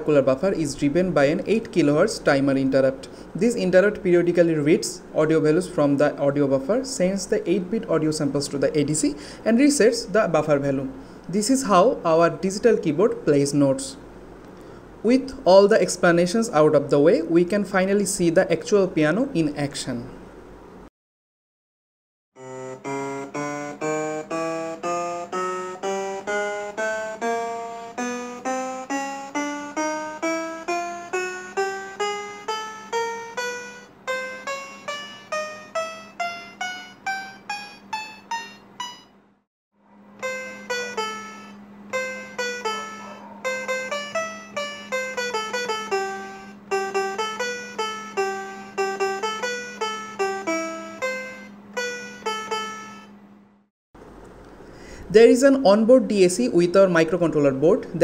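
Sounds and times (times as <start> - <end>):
digital piano notes: 22.4 - 39.2, 40.2 - 53.2
steady low hum: 39.9 - 58.0.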